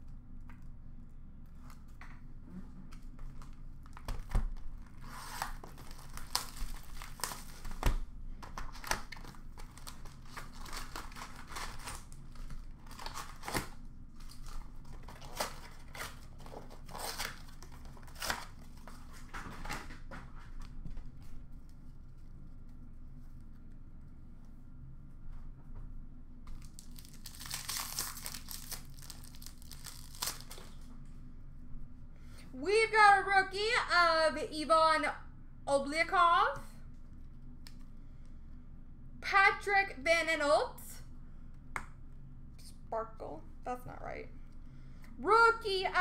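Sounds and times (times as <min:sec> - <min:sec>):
foil packs crinkling: 0:03.0 - 0:20.0, 0:26.5 - 0:30.9
wrapper tearing: 0:03.4 - 0:08.0, 0:08.6 - 0:18.9, 0:26.5 - 0:30.9.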